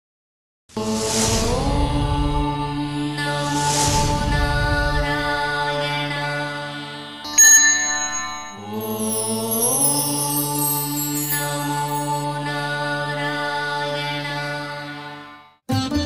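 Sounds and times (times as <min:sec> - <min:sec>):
chanted mantra: 0:00.8 - 0:07.8, 0:08.4 - 0:15.3
bright chime: 0:07.3 - 0:12.3
shimmering sweep: 0:07.4 - 0:12.3.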